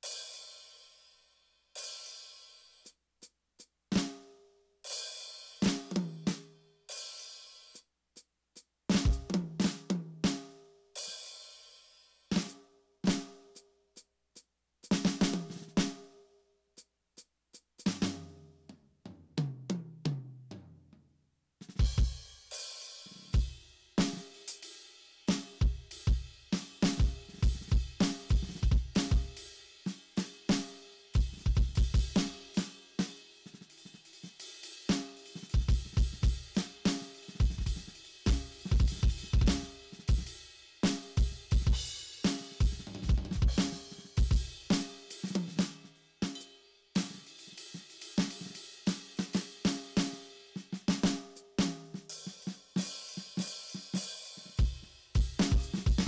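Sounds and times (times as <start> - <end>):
electronic drum kit beat: 8.9 - 10.4, 14.9 - 16.0, 17.6 - 18.3, 21.6 - 24.7, 25.3 - 56.0
tom fill: 34.9 - 46.4.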